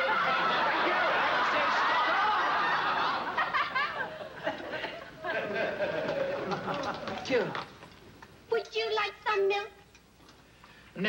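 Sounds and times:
audience laughter: 0.0 - 7.2.

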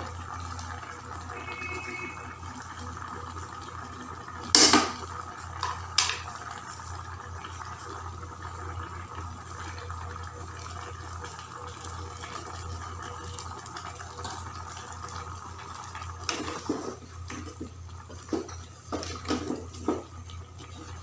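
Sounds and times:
stew bubbling in a pot: 0.0 - 21.0.

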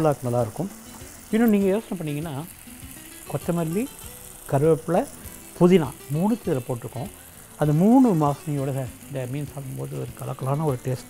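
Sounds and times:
man talking: 0.0 - 0.7, 1.3 - 2.5, 3.3 - 3.9, 4.5 - 11.0
faint frying sizzle: 0.0 - 11.0.

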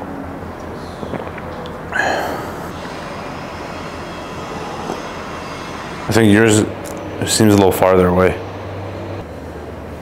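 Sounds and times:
low rumbling background noise: 0.0 - 10.0.

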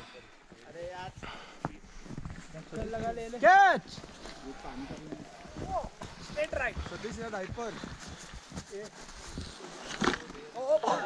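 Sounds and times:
footsteps in snow: 0.6 - 10.5.

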